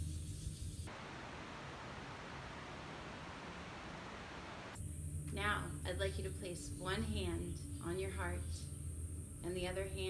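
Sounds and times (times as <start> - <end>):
faint steady hiss: 0.0 - 6.8
low hum: 0.9 - 10.0.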